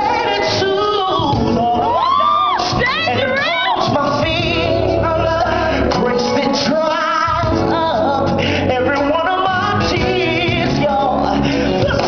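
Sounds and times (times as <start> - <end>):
backing music: 0.0 - 12.0
man singing gospel: 0.0 - 12.0.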